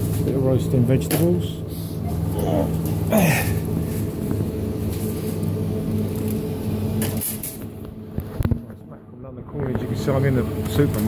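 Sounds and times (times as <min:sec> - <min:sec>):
refrigerator hum: 0:00.0 - 0:11.0.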